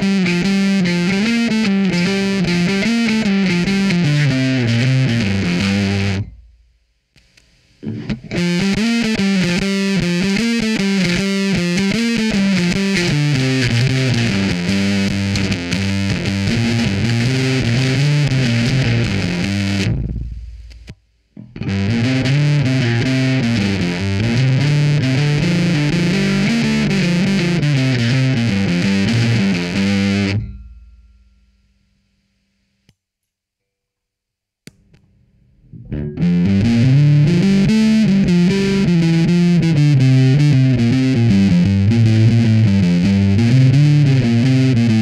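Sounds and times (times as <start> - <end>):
fuzzed electric bass riff: 0.0 - 6.9, 7.7 - 31.5, 35.6 - 45.0.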